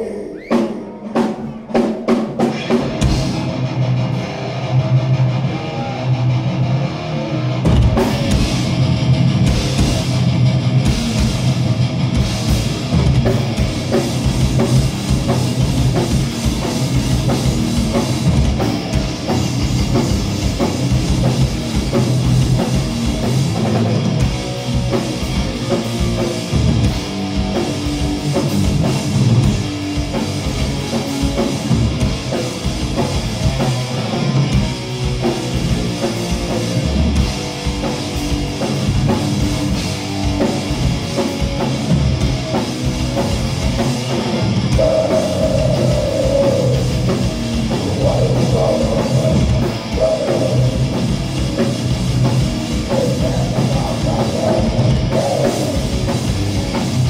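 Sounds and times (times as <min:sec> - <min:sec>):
bass guitar: 0:00.0 - 0:57.0
distorted electric guitars: 0:00.0 - 0:57.0
drum kit: 0:00.0 - 0:57.0
metal band playing live: 0:00.0 - 0:57.0.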